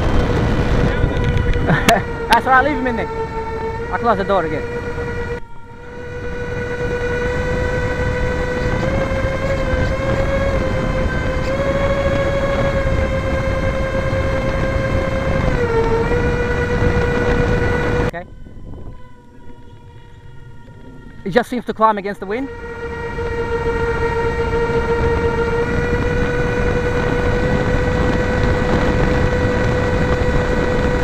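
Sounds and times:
electric ducted fans whining: 0.0 - 31.0
wind rush: 0.0 - 31.0.

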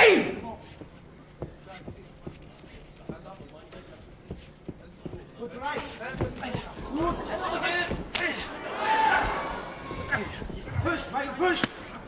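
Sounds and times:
faint shouting: 0.0 - 0.4.

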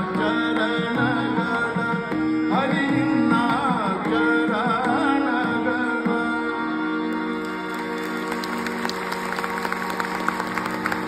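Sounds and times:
audience applause: 7.4 - 11.0.

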